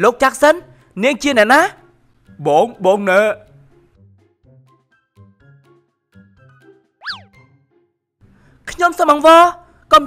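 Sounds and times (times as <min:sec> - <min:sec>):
cartoon music with plucked notes: 0:04.2 - 0:07.9
cartoon pitch slide effect: 0:07.0 - 0:07.4.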